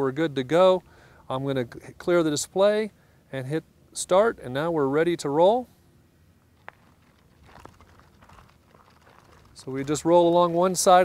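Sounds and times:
footsteps: 0:06.6 - 0:10.9
measuring wheel crunching gravel: 0:06.6 - 0:11.0.

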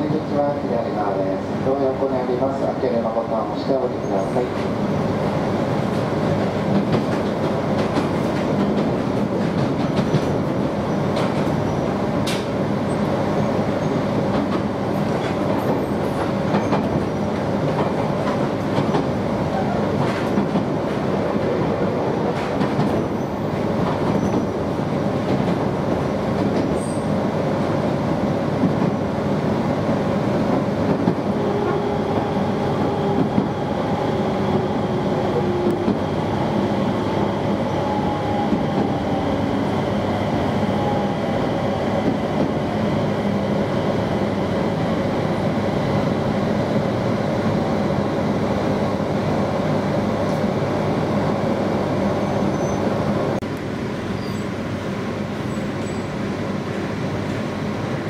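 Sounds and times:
train wheels rumbling on rail: 0:00.0 - 0:58.0.

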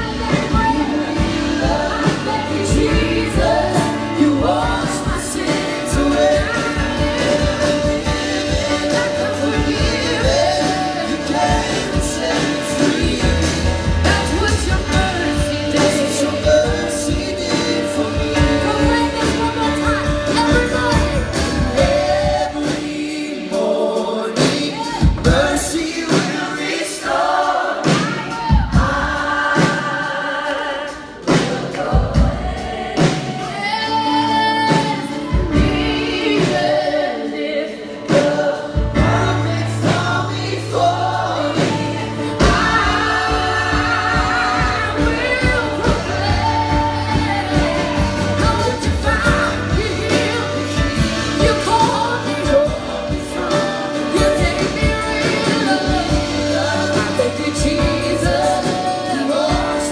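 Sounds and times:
bass line: 0:00.0 - 0:22.7, 0:38.8 - 0:59.9
drums: 0:00.0 - 0:59.9
many voices singing: 0:00.0 - 0:59.9.

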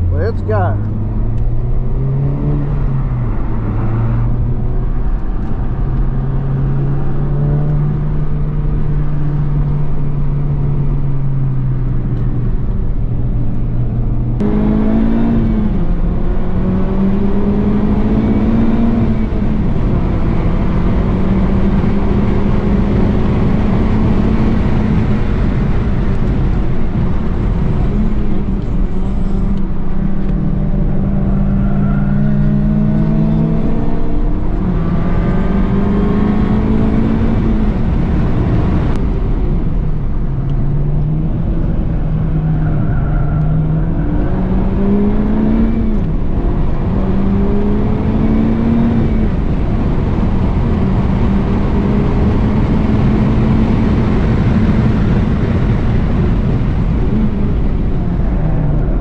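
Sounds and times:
car engine at full throttle: 0:00.0 - 0:59.0.

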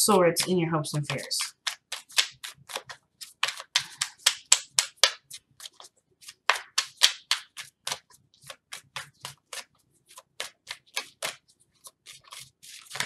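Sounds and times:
cards being shuffled: 0:00.9 - 0:13.0.

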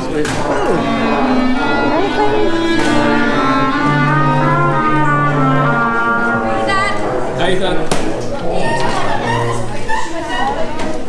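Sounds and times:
band instruments warming up: 0:00.0 - 0:11.0
low held note: 0:00.4 - 0:09.6.

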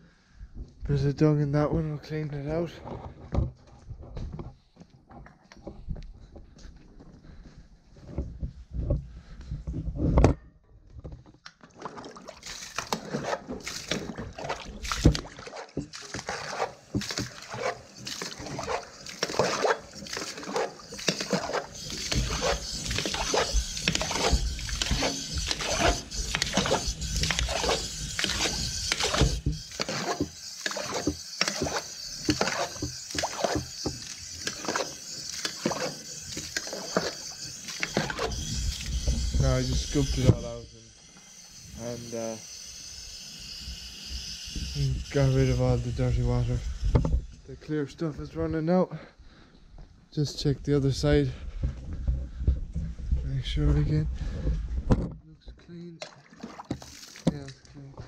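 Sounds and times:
water splashing from trough: 0:11.4 - 0:40.6, 0:56.0 - 0:57.6.

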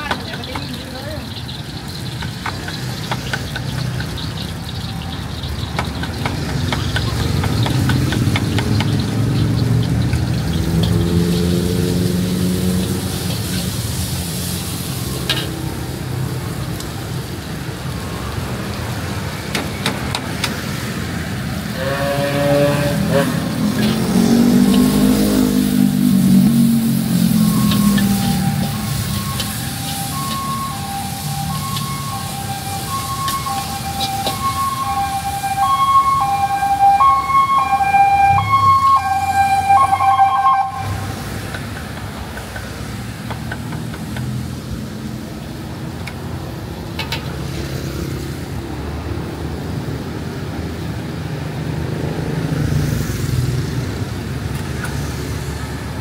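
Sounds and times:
vehicle engines passing: 0:00.0 - 0:56.0
two-pitch electronic beeping signal: 0:27.3 - 0:33.6.

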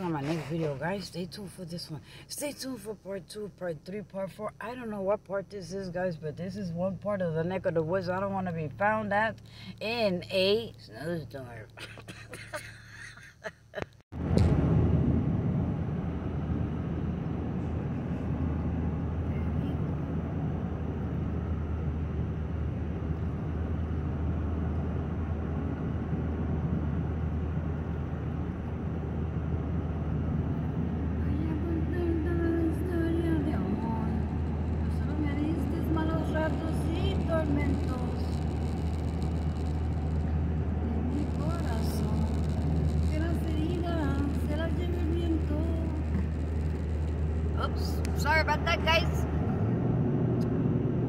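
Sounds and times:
engine and drivetrain drone: 0:14.2 - 0:51.0.

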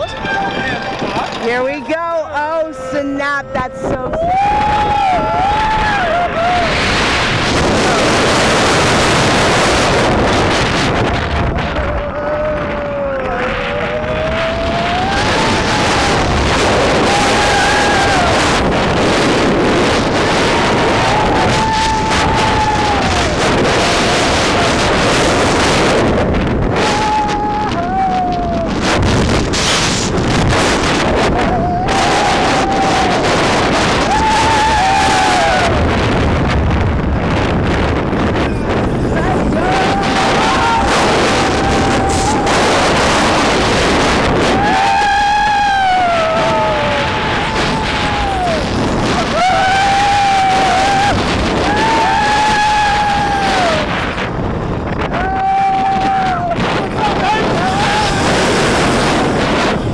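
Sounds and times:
roller coaster rumbling on track: 0:00.0 - 0:59.9
wind rushing on microphone: 0:00.0 - 0:59.9
riders screaming: 0:01.1 - 0:08.9, 0:11.2 - 0:29.4, 0:30.3 - 0:36.0, 0:38.2 - 0:54.2, 0:55.0 - 0:59.8.

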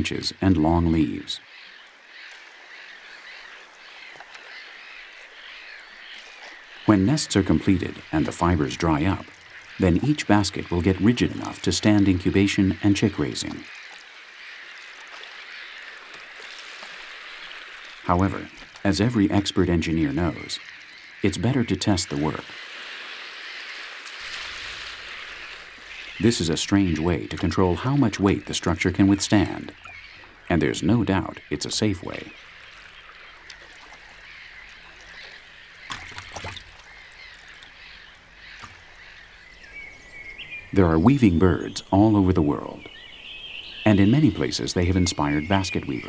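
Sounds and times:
many birds chirping: 0:00.0 - 0:46.0
steady outdoor hiss: 0:00.0 - 0:46.0.

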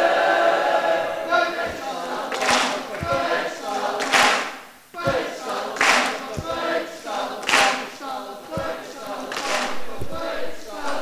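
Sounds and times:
crowd singing a chant: 0:00.0 - 0:11.0.

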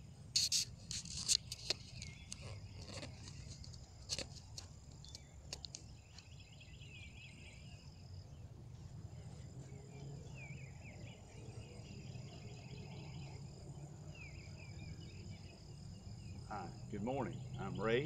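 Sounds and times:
high-pitched insect trill: 0:00.3 - 0:04.6, 0:10.0 - 0:18.0
warbling bird song: 0:00.4 - 0:18.0.

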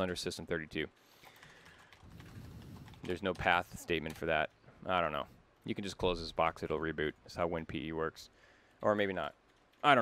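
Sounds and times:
faint keyboard typing: 0:01.1 - 0:04.7, 0:08.9 - 0:10.0.

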